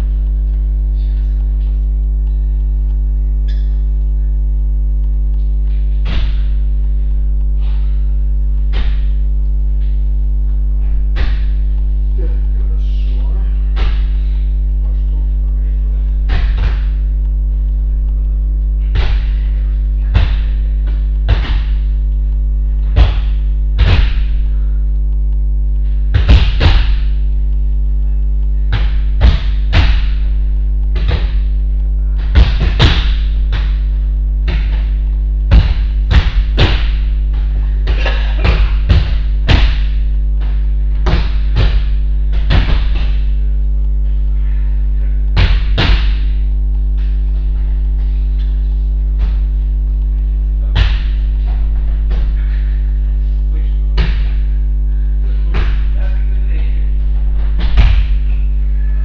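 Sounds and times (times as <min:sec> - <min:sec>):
electrical mains hum: 0:00.0 - 0:59.0
bodies thudding on mats: 0:05.6 - 0:08.0, 0:08.6 - 0:11.8, 0:18.8 - 0:22.0, 0:22.8 - 0:24.4, 0:25.9 - 0:27.3, 0:28.6 - 0:43.5, 0:45.4 - 0:49.6, 0:50.6 - 0:52.8, 0:55.3 - 0:58.5.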